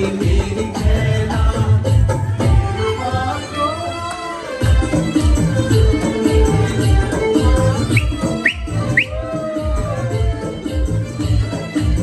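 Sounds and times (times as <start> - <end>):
loud dance music: 4.6 - 12.0
person whistling sharp rising whistles: 7.9 - 9.3.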